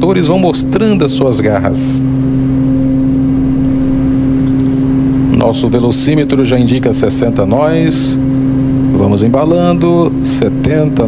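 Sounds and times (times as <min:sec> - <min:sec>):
turboprop engines droning: 0:00.0 - 0:11.0.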